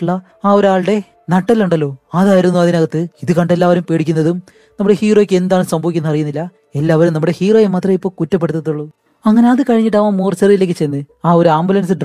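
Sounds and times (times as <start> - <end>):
person talking: 0.0 - 12.0.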